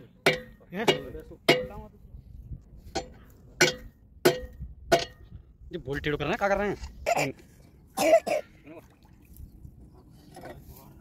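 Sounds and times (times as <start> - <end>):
person coughing: 8.0 - 8.6.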